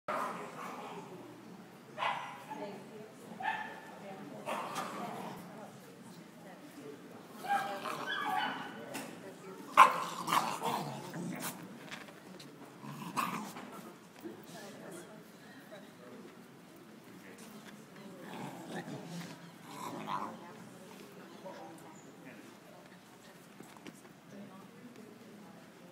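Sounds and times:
murmur of voices: 0.1 - 25.9
people talking: 0.2 - 25.9
dog barking: 2.0 - 2.5, 3.4 - 3.9, 9.8 - 10.2
dog growling: 9.7 - 11.6, 12.8 - 13.8, 18.1 - 20.4.

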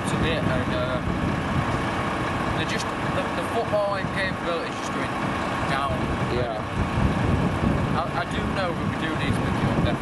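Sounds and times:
man talking: 0.0 - 1.1, 2.5 - 6.8, 7.9 - 10.0
low outdoor rumble: 0.0 - 10.0.

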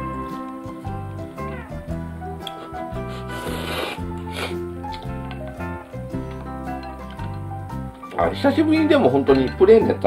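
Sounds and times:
background music with sustained notes: 0.0 - 10.0
noodles being slurped: 2.5 - 5.1.

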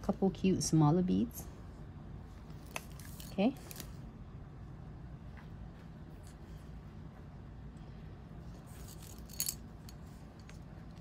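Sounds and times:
low room hum: 0.0 - 11.0
handling small tools: 2.6 - 4.0, 8.5 - 11.0.

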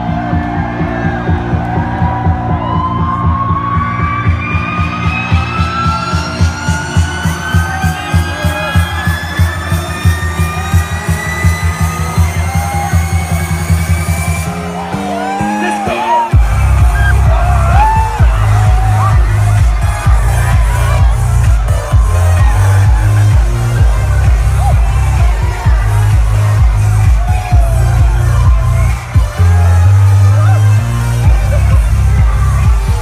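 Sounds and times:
crowd cheering and whooping: 0.0 - 33.0
electronic dance music: 0.0 - 33.0.

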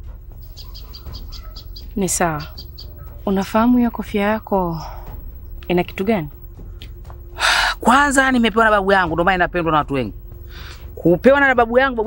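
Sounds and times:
low outdoor rumble: 0.0 - 12.0
small bird chirping: 0.3 - 7.4.

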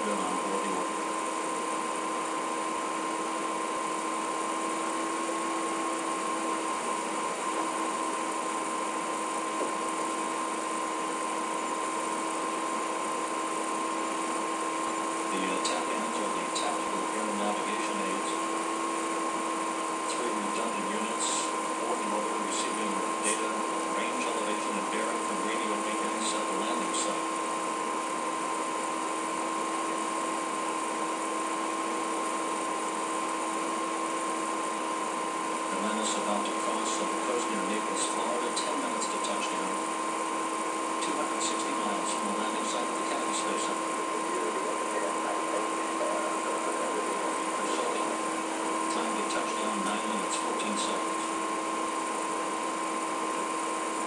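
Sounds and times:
electronic whine: 0.0 - 54.0
faint indistinct voices: 41.0 - 51.4.

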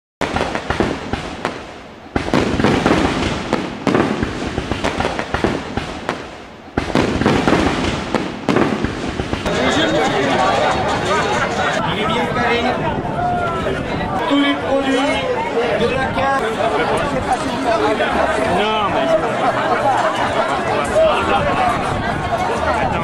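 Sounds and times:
fireworks bursting and crackling: 0.2 - 11.8
crowd chatter: 0.2 - 23.0.

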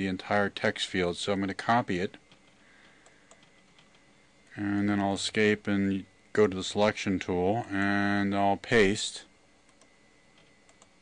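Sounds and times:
computer mouse clicks: 2.3 - 4.0, 9.7 - 11.0.

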